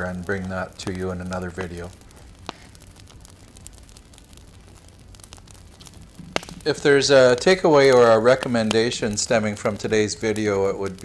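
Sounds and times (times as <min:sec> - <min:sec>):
battery crackling and hissing: 0:00.0 - 0:11.0
sharp crack: 0:00.0 - 0:11.0.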